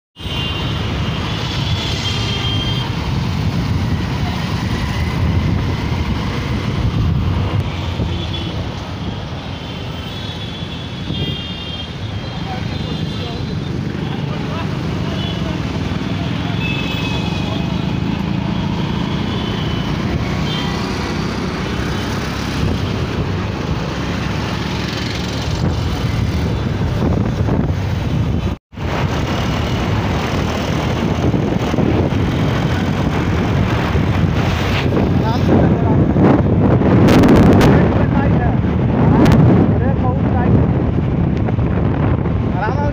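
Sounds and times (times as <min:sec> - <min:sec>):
road traffic noise: 0:00.2 - 0:42.9.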